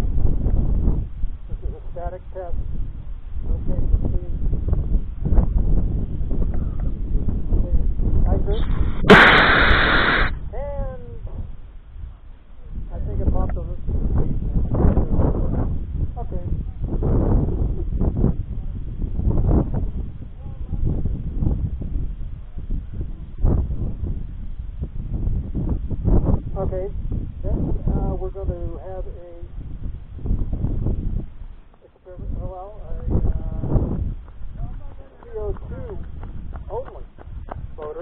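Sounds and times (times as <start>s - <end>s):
wind buffeting microphone: 0.0s - 38.0s
rocket motor rushing: 8.5s - 10.3s.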